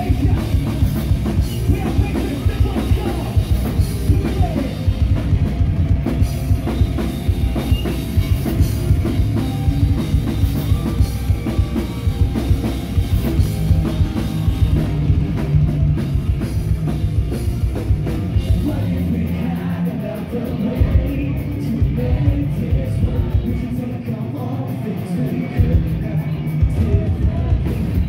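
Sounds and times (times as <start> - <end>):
fast dense drumming: 0.0 - 23.8, 25.6 - 28.0
heavy rock band playing: 0.0 - 28.0.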